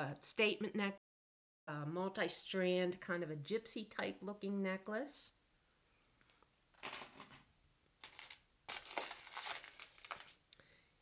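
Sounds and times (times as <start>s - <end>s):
wrapping crinkling and rustling: 8.0s - 10.5s.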